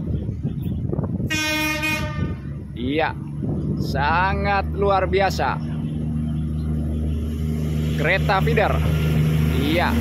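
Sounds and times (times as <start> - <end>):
train horn blast: 1.3 - 2.6.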